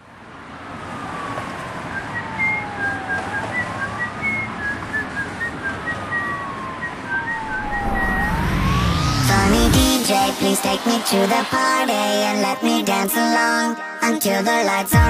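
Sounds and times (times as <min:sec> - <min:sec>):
siren tone sweeping in pitch: 0:01.8 - 0:11.7
high whistle-like blips: 0:01.9 - 0:12.0
low bass: 0:07.5 - 0:10.0.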